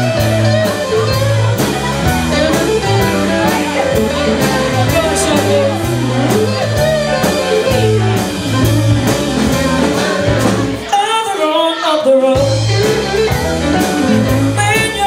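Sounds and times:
steady drum beat: 0.0s - 10.9s, 12.4s - 15.0s
bass: 0.0s - 15.0s
electric guitar: 0.0s - 15.0s
woman singing into a microphone: 10.8s - 12.7s.

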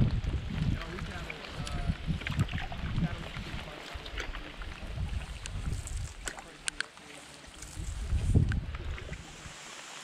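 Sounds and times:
wind rumbling on microphone: 0.0s - 6.8s, 7.5s - 9.8s
paddle strokes in water: 0.8s - 10.0s.

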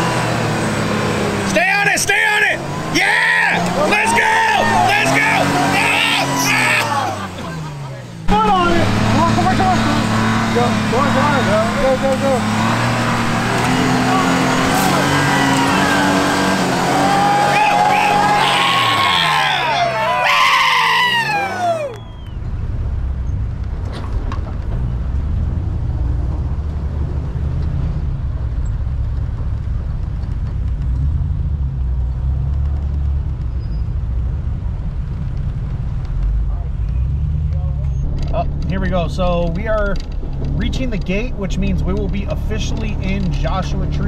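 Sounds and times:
truck driving low drone: 0.0s - 44.0s
truck engine revving: 0.0s - 44.0s
people whooping and shouting: 2.9s - 7.6s, 13.4s - 22.4s.

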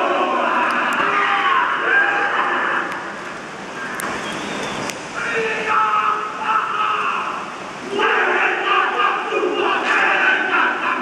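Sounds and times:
men chanting and shouting: 0.0s - 2.9s, 5.2s - 11.0s.

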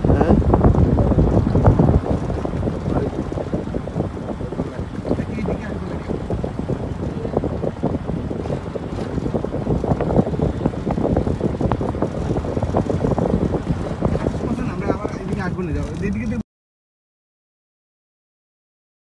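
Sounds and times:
wind buffeting microphone: 0.0s - 16.4s.

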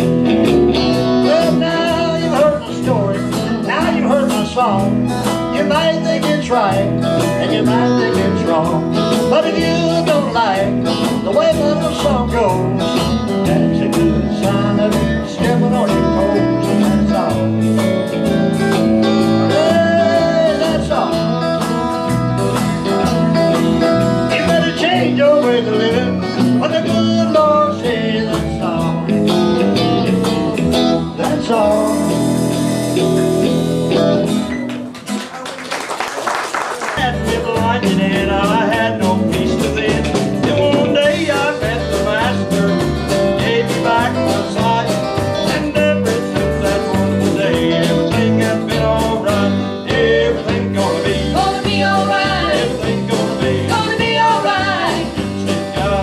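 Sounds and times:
bass line: 0.0s - 34.7s, 37.0s - 56.0s
country blues guitar song: 0.0s - 35.4s, 36.7s - 56.0s.

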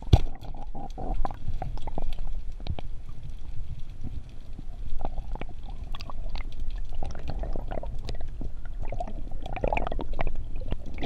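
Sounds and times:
clicks and crackles: 0.0s - 11.0s
underwater rumble of water: 0.0s - 11.0s.

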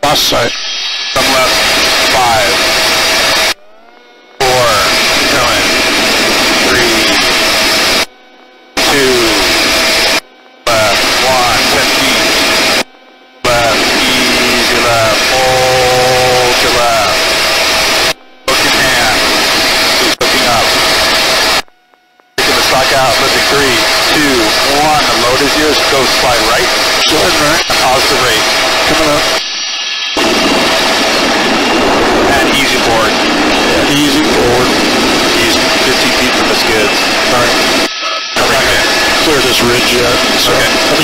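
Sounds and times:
helicopter engine and rotor noise: 0.0s - 41.0s.

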